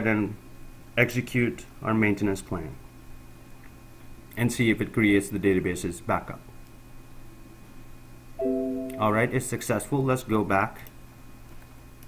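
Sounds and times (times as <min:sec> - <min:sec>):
faint hum: 0:00.0 - 0:12.0
computer chime: 0:08.4 - 0:09.3.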